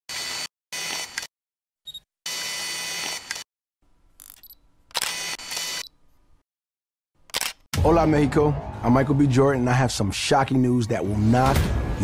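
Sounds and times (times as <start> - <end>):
camera lens mechanical whirs: 1.9 - 3.4, 4.4 - 5.9
sharp camera click: 4.2 - 5.8, 7.3 - 7.7.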